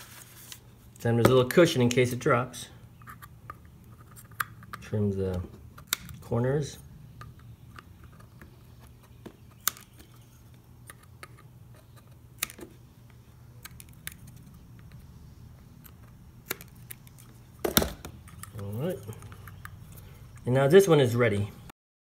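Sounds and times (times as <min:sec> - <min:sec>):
faint low hum: 0:00.0 - 0:21.7.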